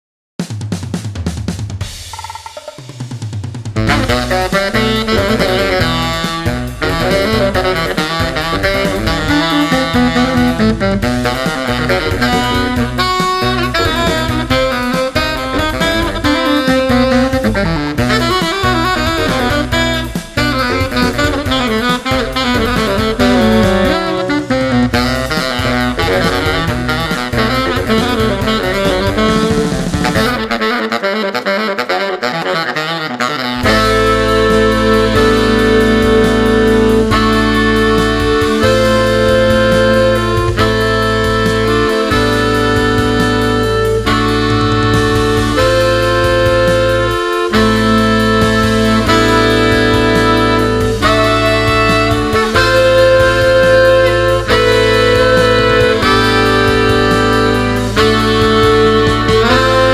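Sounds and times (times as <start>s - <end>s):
rock drum kit: 0.4s - 31.0s, 33.6s - 59.9s
baritone saxophones playing: 3.8s - 59.9s.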